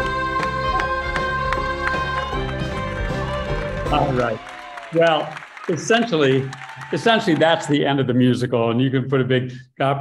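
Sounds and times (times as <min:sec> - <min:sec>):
upbeat children's song: 0:00.0 - 0:04.4.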